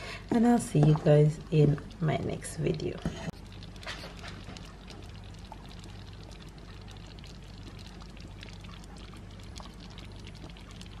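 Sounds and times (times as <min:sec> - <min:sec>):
steady low hum: 0:00.0 - 0:11.0
thick soup bubbling in a pot: 0:00.0 - 0:11.0.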